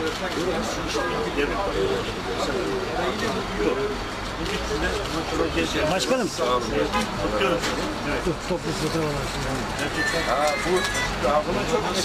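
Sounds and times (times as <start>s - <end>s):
men talking indistinctly: 0.0s - 12.0s
street traffic rumble: 0.0s - 12.0s.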